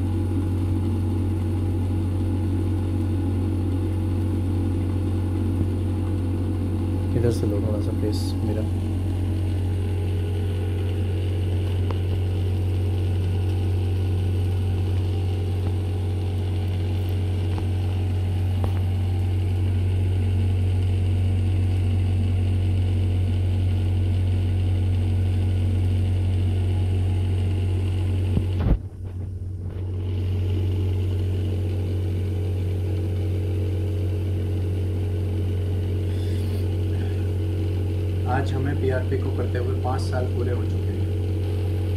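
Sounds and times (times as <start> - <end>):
steady low hum with tones: 0.0 - 41.9.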